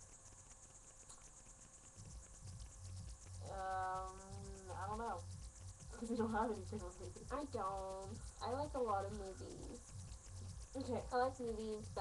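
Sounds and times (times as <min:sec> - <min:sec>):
woman humming: 0:03.4 - 0:05.2.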